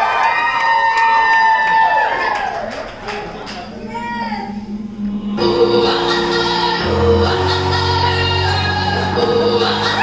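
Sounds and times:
audience whooping: 0.0s - 4.0s
scattered claps: 2.4s - 3.7s.

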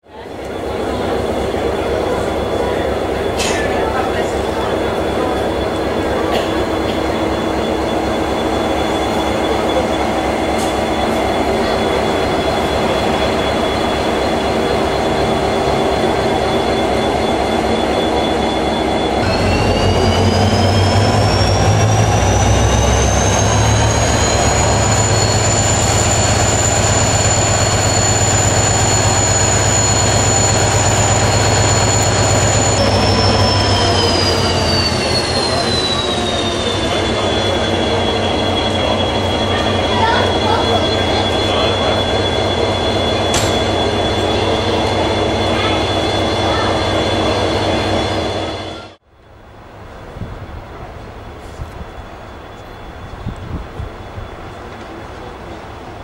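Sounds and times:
diesel locomotive engine rumbling: 0.0s - 56.0s
high engine whine: 0.2s - 56.0s.

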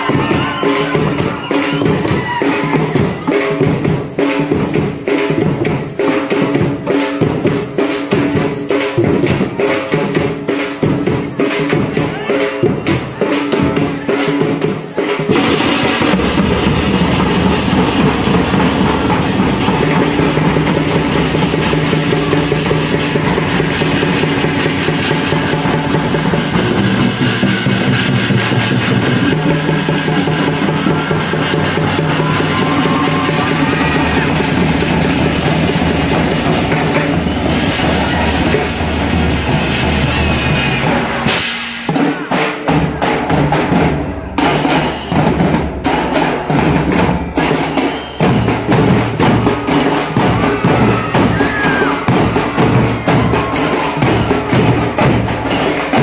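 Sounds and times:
drums and percussion: 0.0s - 56.0s.

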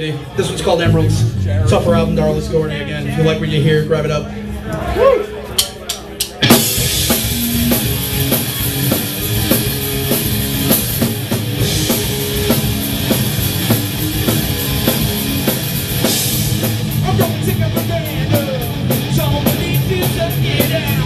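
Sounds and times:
live rock band playing: 0.1s - 5.0s, 5.7s - 21.0s
drum kit: 0.4s - 4.0s, 5.6s - 21.0s.

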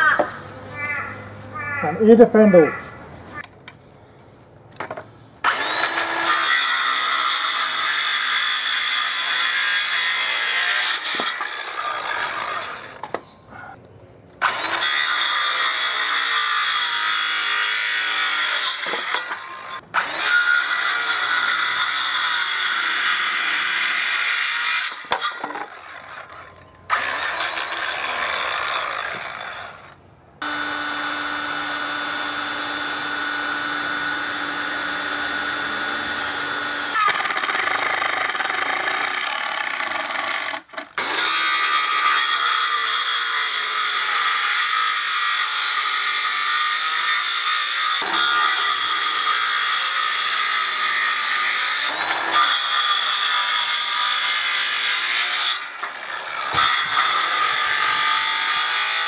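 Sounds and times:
electric planer shaving wood: 30.4s - 40.4s, 41.0s - 59.0s
cordless drill running: 30.4s - 40.6s.

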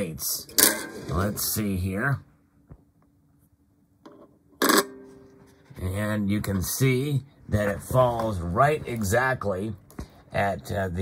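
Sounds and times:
guitar pick tapping metal plate: 4.0s - 5.4s.

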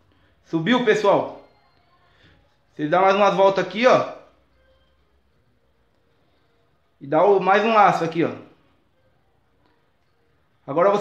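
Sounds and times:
man's voice: 0.5s - 1.4s, 2.8s - 4.3s, 7.0s - 8.5s, 10.7s - 11.0s.

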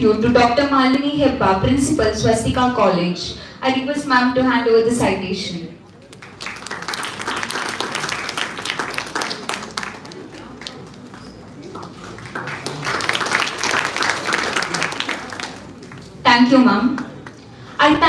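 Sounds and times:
audience applauding: 6.1s - 16.2s.

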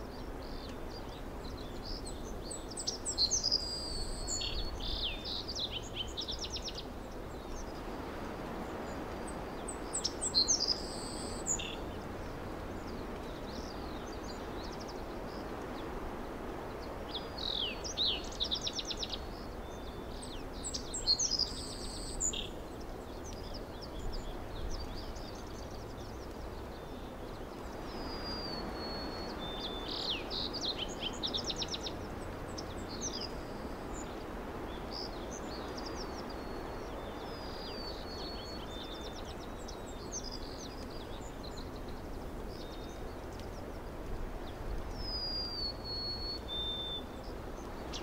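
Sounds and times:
outdoor background hiss: 0.0s - 48.0s
small birds chirping: 0.0s - 48.0s.

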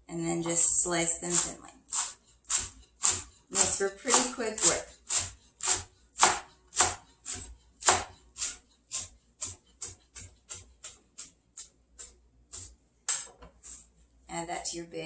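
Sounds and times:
knife chopping on cutting board: 1.3s - 13.4s.

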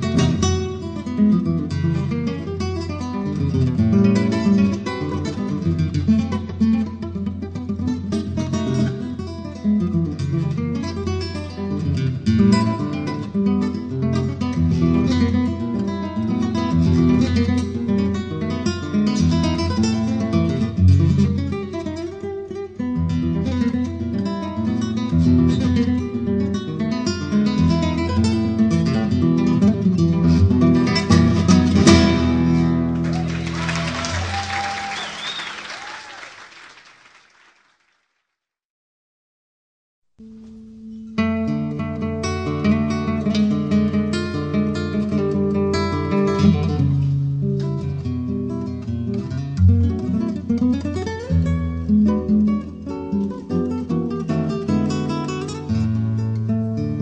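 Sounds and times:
nylon-string acoustic guitar: 0.0s - 33.3s, 40.2s - 57.0s.

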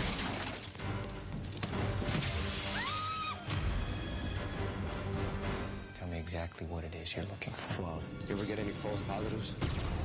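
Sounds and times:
glass shattering: 0.0s - 0.8s
dramatic trailer music: 0.0s - 6.3s, 7.5s - 10.0s.

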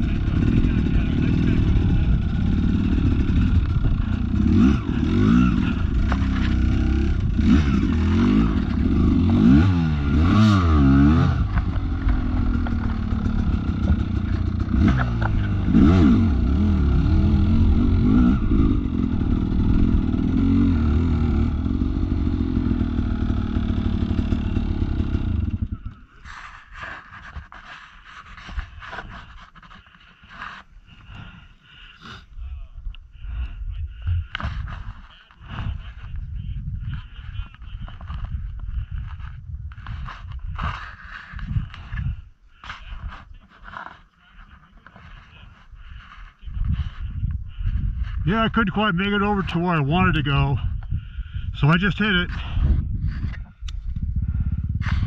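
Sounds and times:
dirt bike engine running: 0.0s - 26.1s, 34.1s - 42.3s, 44.8s - 55.0s.

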